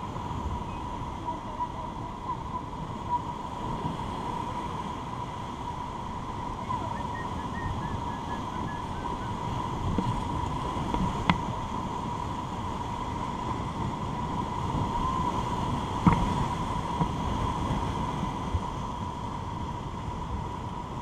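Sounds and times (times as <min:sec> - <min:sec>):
rushing whitewater: 0:00.0 - 0:21.0
thin steady hum: 0:00.0 - 0:21.0
wind buffeting microphone: 0:00.0 - 0:21.0.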